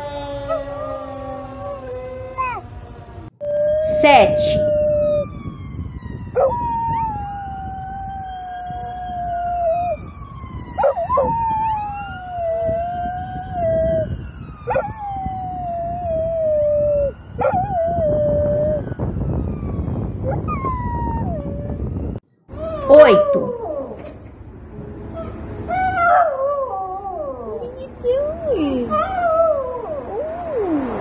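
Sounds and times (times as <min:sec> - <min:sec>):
dog howling: 0:00.0 - 0:02.8, 0:22.6 - 0:24.0.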